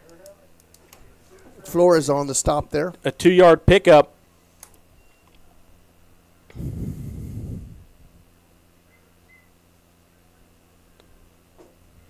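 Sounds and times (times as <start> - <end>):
low electrical hum: 0.0 - 12.0
muffled low rumble with hiss: 0.0 - 12.0.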